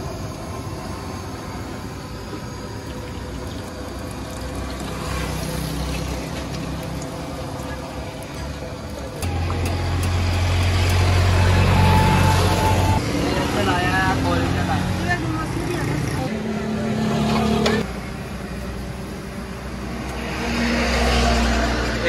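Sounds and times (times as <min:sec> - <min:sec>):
vehicle engines passing: 0:00.0 - 0:22.0.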